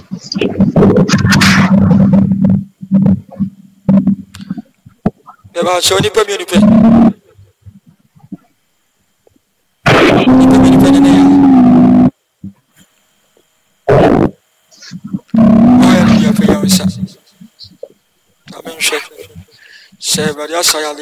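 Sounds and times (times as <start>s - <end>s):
person crying out loudly: 10.2s - 11.8s.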